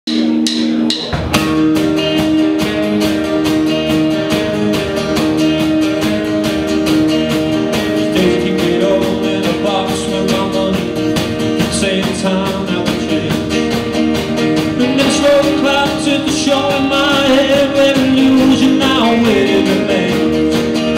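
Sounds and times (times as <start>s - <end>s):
live rock band playing: 0.1s - 20.9s.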